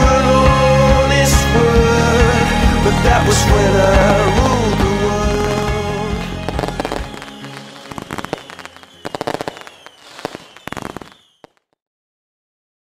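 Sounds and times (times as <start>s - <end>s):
music: 0.0s - 11.0s
fireworks crackling: 2.9s - 11.7s.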